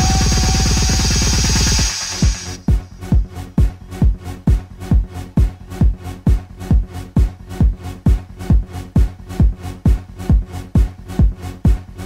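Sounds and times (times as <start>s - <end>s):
held synth note: 0.0s - 2.6s
steady hiss: 0.0s - 2.6s
rapid kick drum roll: 0.0s - 3.3s.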